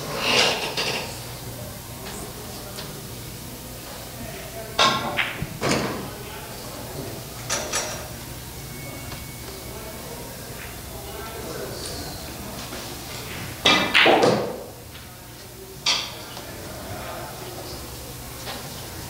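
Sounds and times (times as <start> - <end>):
murmur of hall: 1.1 - 19.0
cue striking ball: 4.8 - 6.1, 13.6 - 14.7
pool balls clacking: 4.8 - 6.1, 13.5 - 14.8.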